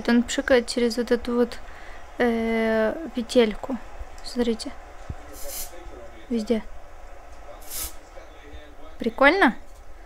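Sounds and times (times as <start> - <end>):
aerosol spray hiss: 5.4 - 5.7, 7.6 - 8.0.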